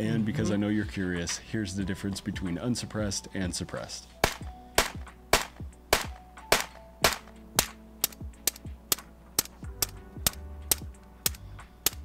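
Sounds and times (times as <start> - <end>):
rifle shots: 4.2 - 7.8.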